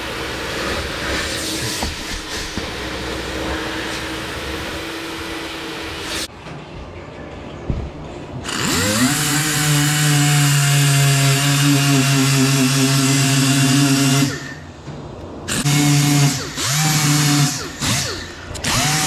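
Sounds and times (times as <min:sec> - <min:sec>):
die grinder grinding metal: 0:15.5 - 0:19.0.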